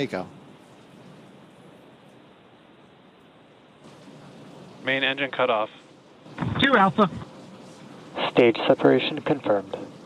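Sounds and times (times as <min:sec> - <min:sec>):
audio line hiss: 0:00.0 - 0:10.0.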